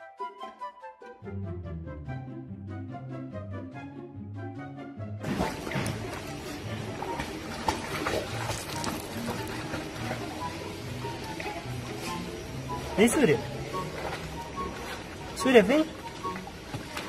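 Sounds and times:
background music: 0.0 - 17.0
water splashing and sloshing: 5.2 - 17.0.

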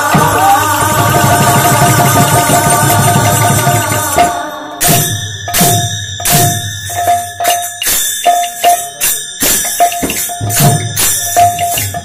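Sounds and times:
hand drum fast rhythm: 0.0 - 4.5
devotional music: 0.0 - 6.1.

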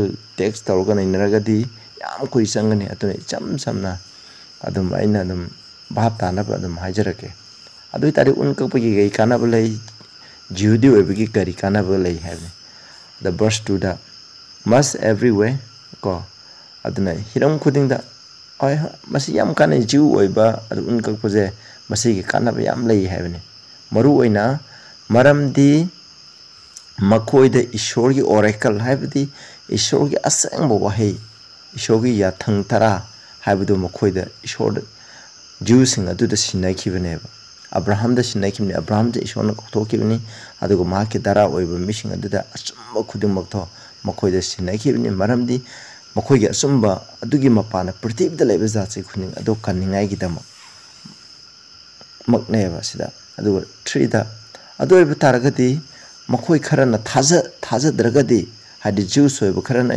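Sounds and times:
man speaking: 0.0 - 12.6, 13.2 - 26.0, 26.8 - 35.0, 35.6 - 50.5, 52.2 - 59.9
high-pitched insect drone: 0.0 - 59.9.

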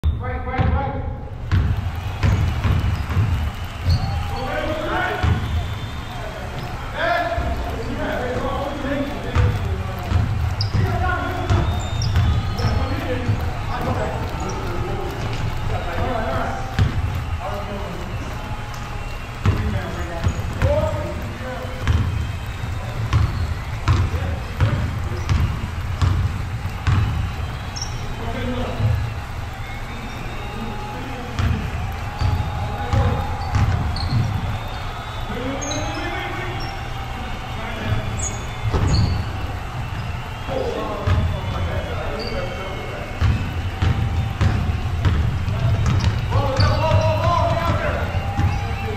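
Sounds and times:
sneaker squeaks: 0.0 - 48.9
basketball bouncing: 0.6 - 0.8, 1.4 - 42.3, 43.1 - 48.9.

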